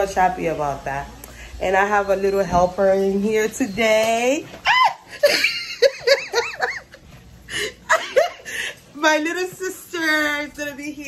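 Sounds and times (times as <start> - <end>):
woman laughing: 4.6 - 9.0.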